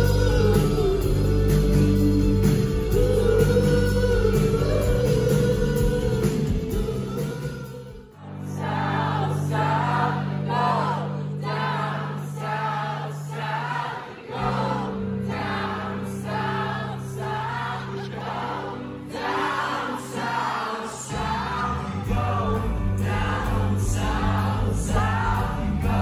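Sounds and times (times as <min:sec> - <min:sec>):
live rock band playing: 0:00.0 - 0:08.0, 0:21.2 - 0:26.0
person singing: 0:00.0 - 0:26.0.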